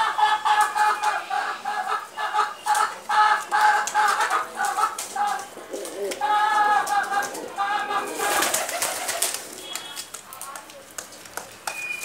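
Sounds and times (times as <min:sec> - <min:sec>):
pigeons cooing: 0:00.0 - 0:10.1
rustling and scraping: 0:03.8 - 0:11.6.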